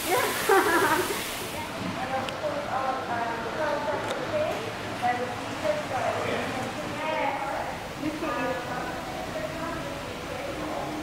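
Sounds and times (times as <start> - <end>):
shower jets spraying water: 0.0 - 11.0.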